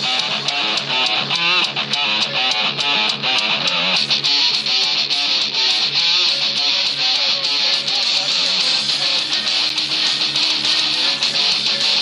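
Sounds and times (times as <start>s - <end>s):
loud music with steady beat: 0.0s - 12.0s.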